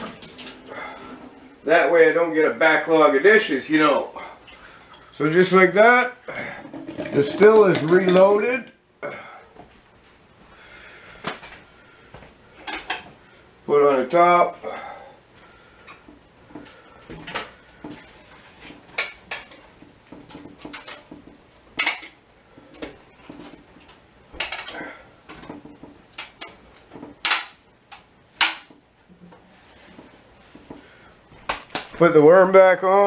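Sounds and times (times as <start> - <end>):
metal pot clinking and clanking: 6.6 - 8.2.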